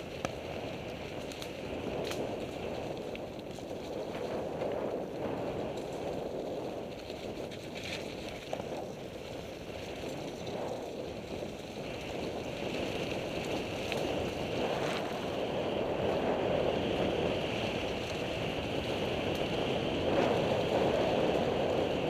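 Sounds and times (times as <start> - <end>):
bike tyres on dirt trail: 0.0 - 22.0
wind on microphone: 0.0 - 22.0.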